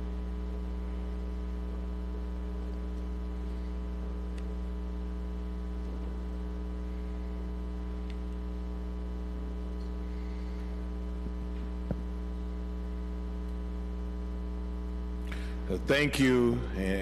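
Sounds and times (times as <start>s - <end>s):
electrical mains hum: 0.0s - 17.0s
faint click: 4.3s - 4.5s, 8.0s - 8.4s.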